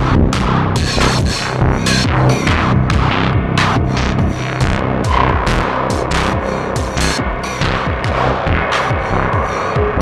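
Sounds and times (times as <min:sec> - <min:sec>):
drum machine percussion: 0:00.0 - 0:10.0
synth bass line: 0:00.0 - 0:10.0
sustained synth tones: 0:00.4 - 0:10.0.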